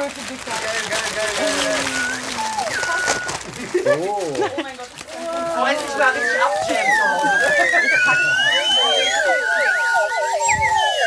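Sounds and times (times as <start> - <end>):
slide whistles gliding: 1.5 - 3.4, 5.6 - 11.0.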